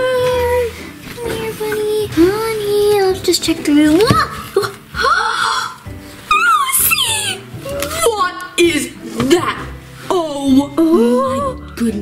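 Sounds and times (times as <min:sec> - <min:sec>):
girl's high-pitched squeals: 0:05.0 - 0:08.1.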